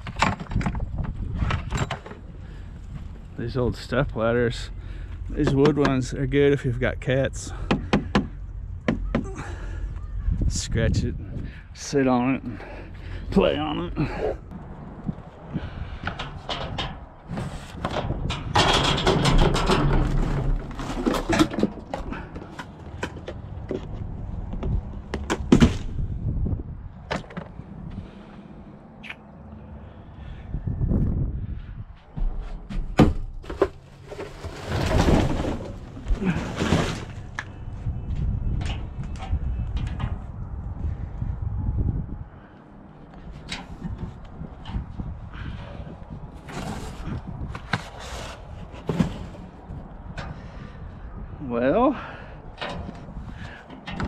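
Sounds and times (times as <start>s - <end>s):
plastic dumpster lid opening: 16.2s - 22.4s, 32.9s - 37.3s, 46.4s - 49.5s.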